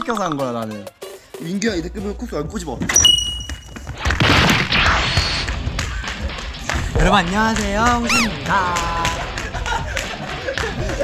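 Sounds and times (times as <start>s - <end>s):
background music: 0.0s - 11.0s
short high ding: 3.0s - 3.6s.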